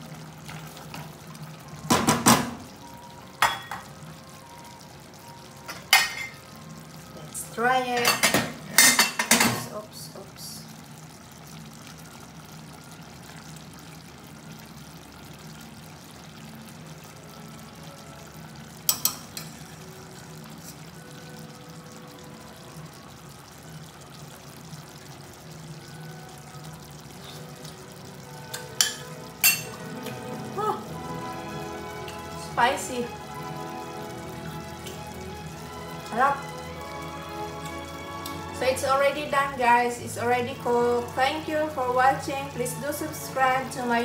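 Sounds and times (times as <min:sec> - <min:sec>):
stew simmering in a pot: 0:00.0 - 0:44.0.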